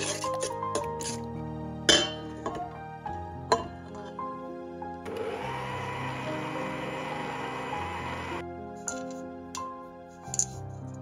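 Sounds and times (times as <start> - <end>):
metal spoon clinking bowl: 0.0 - 1.3, 1.9 - 2.6, 8.8 - 10.7
background music with held notes: 0.0 - 11.0.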